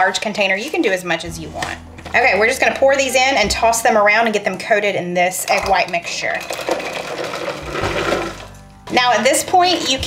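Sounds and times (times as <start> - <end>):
nuts rattling into glass bowl: 5.5 - 8.5.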